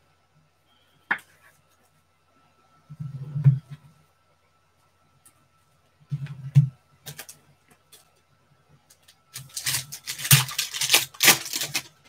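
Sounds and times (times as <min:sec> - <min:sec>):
foil wrapper crinkling and tearing: 0:09.3 - 0:12.0.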